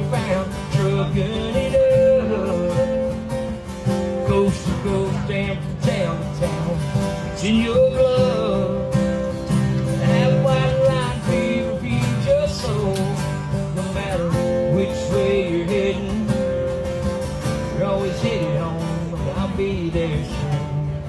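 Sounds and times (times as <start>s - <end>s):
acoustic guitar strumming: 0.0s - 21.0s
man singing: 0.0s - 21.0s.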